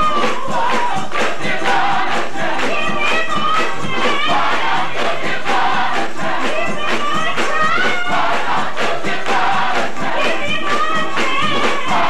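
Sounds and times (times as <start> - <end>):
choir singing: 0.0 - 12.0
tambourine beat: 0.0 - 12.0
woman singing lead: 2.5 - 5.2, 6.0 - 12.0.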